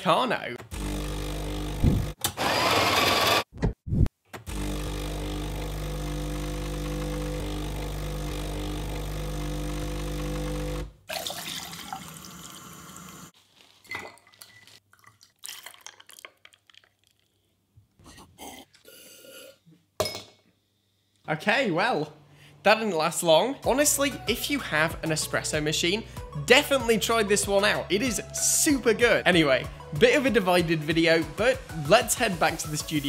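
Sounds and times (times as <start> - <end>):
coffee grinder running: 0.7 - 3.5, 4.5 - 13.3
espresso pump electric buzz: 0.7 - 3.5, 4.5 - 11.0
tap water running into glass: 11.1 - 13.2.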